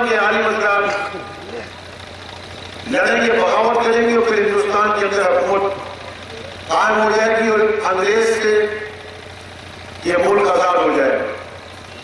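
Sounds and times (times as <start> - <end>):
man speaking over loudspeakers: 0.0 - 1.7, 2.8 - 6.0, 6.6 - 9.0, 10.0 - 11.5
steady low hum: 0.0 - 12.0.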